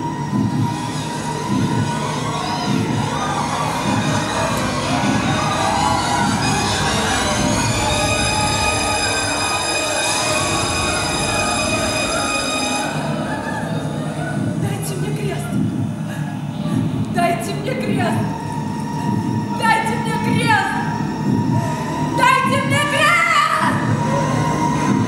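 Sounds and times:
high sustained musical tones: 0.0s - 25.0s.

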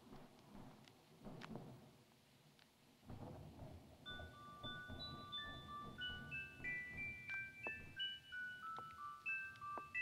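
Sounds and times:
music box melody: 4.1s - 10.0s.

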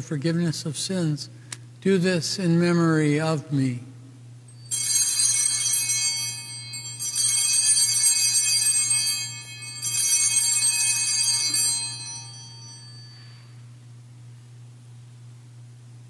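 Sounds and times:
altar bells ringing: 4.5s - 13.6s.

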